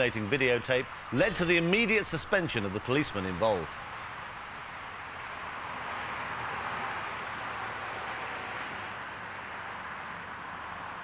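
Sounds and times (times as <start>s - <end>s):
roadside noise hiss: 0.0s - 11.0s.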